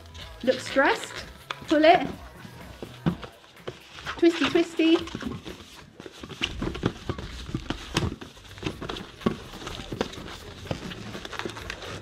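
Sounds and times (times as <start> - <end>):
balloon rubber squeaks and creaks: 0.0 - 12.0.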